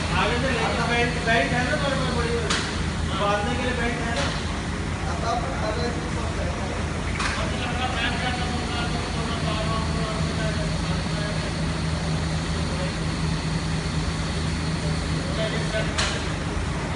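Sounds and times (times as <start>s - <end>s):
low mechanical hum: 0.0s - 16.9s.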